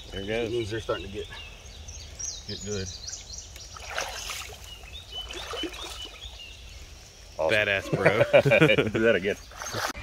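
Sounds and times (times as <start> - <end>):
fish splashing in water: 3.6 - 6.4.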